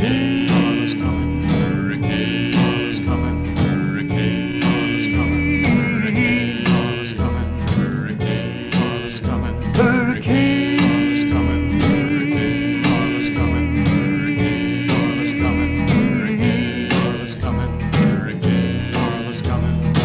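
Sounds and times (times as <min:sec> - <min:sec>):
folk song with strummed guitar: 0:00.0 - 0:20.0.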